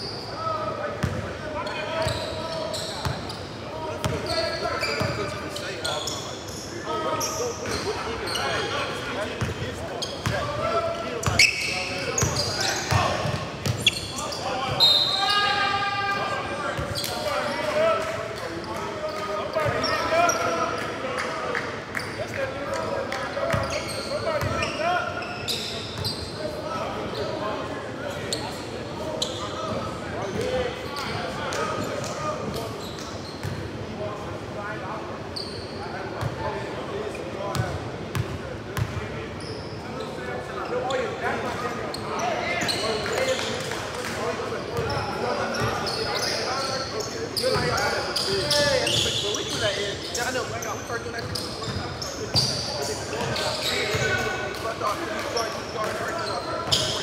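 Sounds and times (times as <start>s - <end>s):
echoing voices in gym: 0.0s - 57.0s.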